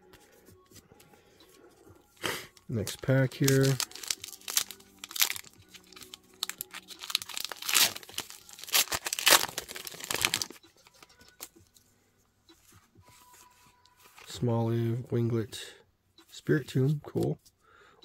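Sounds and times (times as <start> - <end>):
foil wrapper tearing and crinkling: 3.3 - 10.6.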